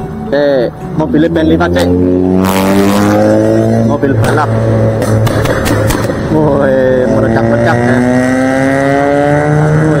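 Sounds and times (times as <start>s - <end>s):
vehicle engine accelerating: 0.9s - 10.0s.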